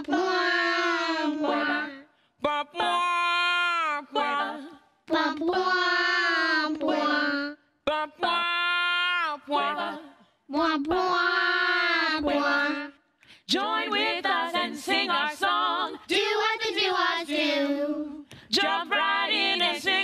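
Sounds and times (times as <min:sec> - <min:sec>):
woman singing: 0:00.0 - 0:16.2
childlike puppet voices singing: 0:00.0 - 0:20.0.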